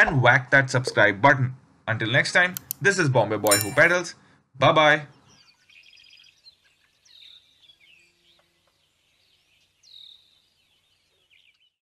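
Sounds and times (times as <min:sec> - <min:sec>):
bird chirping trill: 0:03.5 - 0:04.0.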